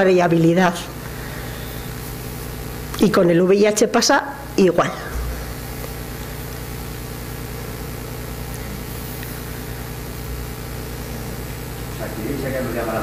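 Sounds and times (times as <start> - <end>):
low even hum: 0.0 - 13.0
light hiss: 5.2 - 10.6.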